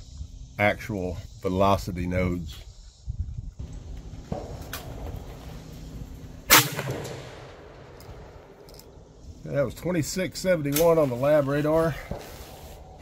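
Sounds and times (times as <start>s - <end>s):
rifle shot: 6.5s - 8.5s.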